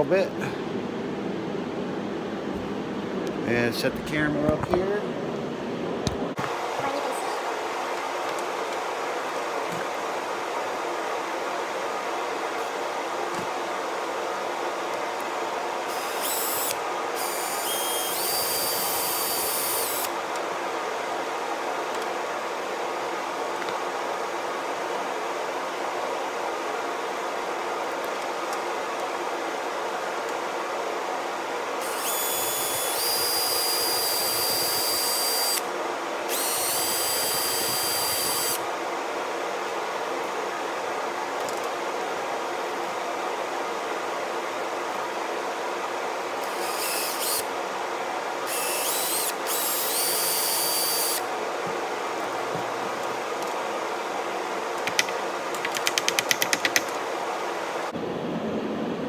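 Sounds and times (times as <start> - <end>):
steady hum: 0.0 - 55.8
cordless drill whining: 15.9 - 20.1, 31.8 - 35.6, 36.3 - 38.6, 46.4 - 47.4, 48.5 - 51.2.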